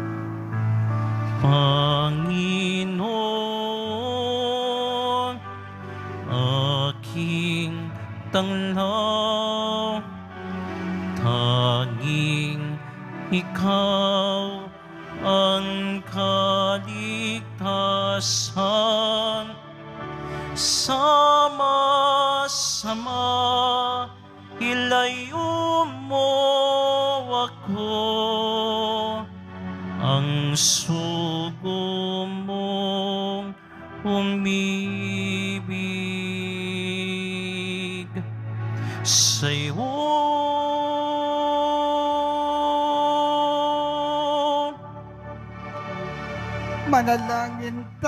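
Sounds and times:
slow church hymn: 0:00.0 - 0:48.0
sustained accompanying chords: 0:00.0 - 0:48.0.

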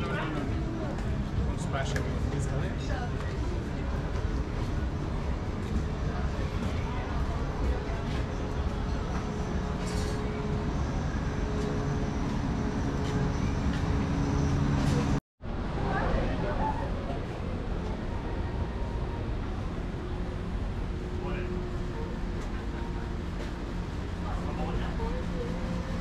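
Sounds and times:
people talking nearby: 0:00.0 - 0:10.8, 0:14.8 - 0:26.0
steady low hum: 0:00.0 - 0:26.0.

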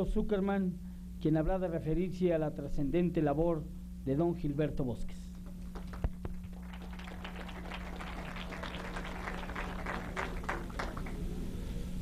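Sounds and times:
audience applauding: 0:05.4 - 0:11.4.

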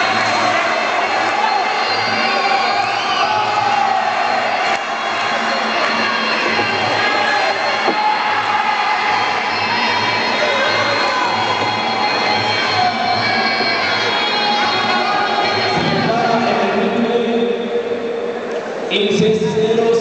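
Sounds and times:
spectators shouting and cheering: 0:00.0 - 0:19.3.

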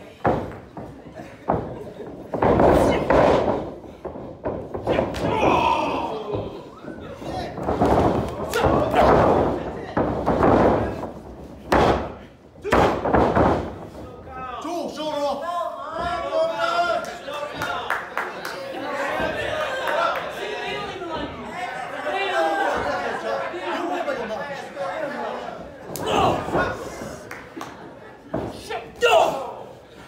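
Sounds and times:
people shouting: 0:04.8 - 0:07.6, 0:08.2 - 0:09.2, 0:25.9 - 0:27.2, 0:28.6 - 0:29.7
heavy thuds on wrestling ring: 0:07.4 - 0:14.0.

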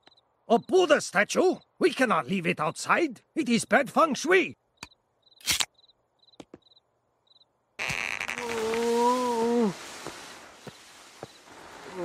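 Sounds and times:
crickets chirping: 0:00.0 - 0:03.7, 0:04.6 - 0:12.0.

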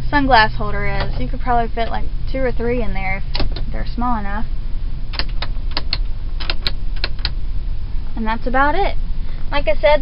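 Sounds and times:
steady low rumble: 0:00.0 - 0:10.0.

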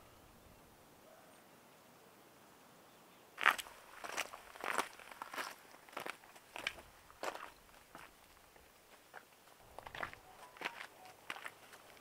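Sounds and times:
footsteps on rocky dirt trail: 0:03.4 - 0:12.0.

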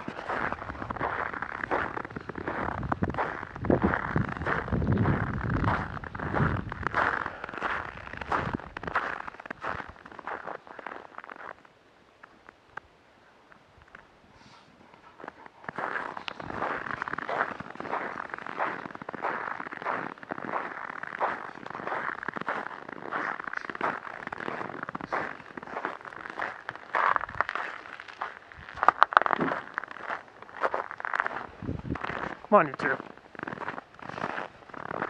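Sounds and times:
footsteps crunching through snow: 0:00.0 - 0:11.6, 0:15.1 - 0:35.0.

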